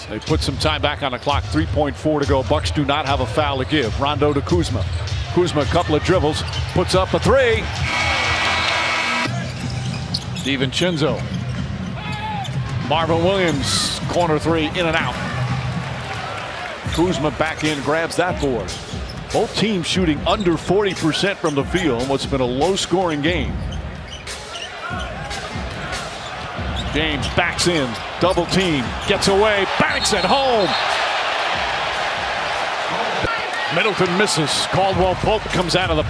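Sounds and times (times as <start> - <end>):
arena crowd noise: 0.0 - 36.0
buzzing arena horn: 7.8 - 9.3.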